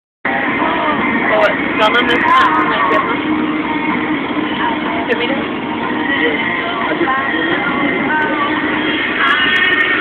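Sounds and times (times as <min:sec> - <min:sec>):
people's voices: 0:00.3 - 0:10.0
vehicle running noise: 0:00.3 - 0:10.0.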